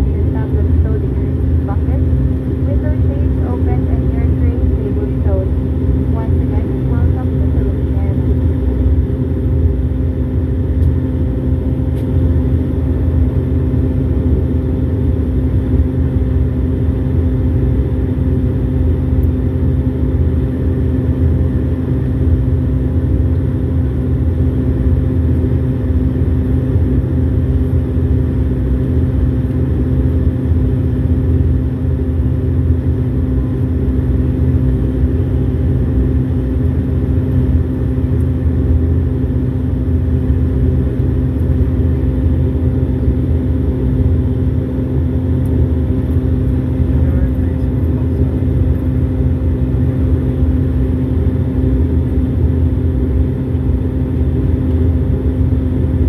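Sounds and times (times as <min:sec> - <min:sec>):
turboprop engines droning: 0:00.0 - 0:56.0.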